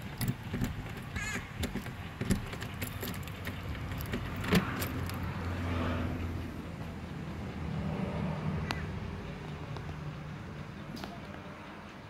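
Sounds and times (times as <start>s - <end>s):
keys jangling in a lock: 0.0s - 5.3s.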